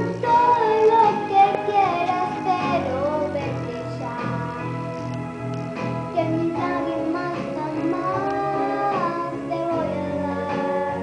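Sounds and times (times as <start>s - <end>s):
backing track: 0.0s - 11.0s
girl singing pop ballad: 0.0s - 11.0s.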